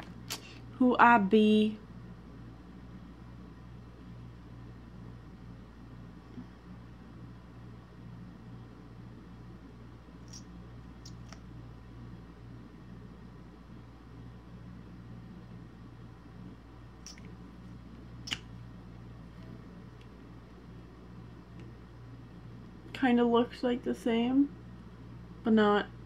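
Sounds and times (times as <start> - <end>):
low hum: 0.0 - 26.0.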